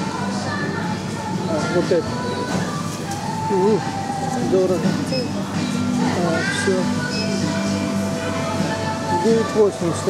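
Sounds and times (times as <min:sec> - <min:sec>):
in-store music: 0:00.0 - 0:10.0.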